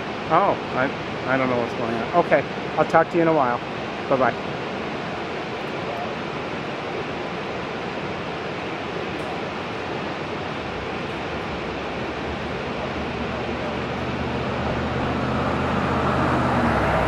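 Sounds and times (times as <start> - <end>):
steady rushing noise: 0.0 - 17.0.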